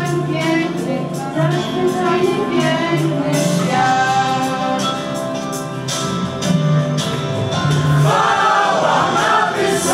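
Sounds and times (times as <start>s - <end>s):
choir singing: 8.0s - 9.9s.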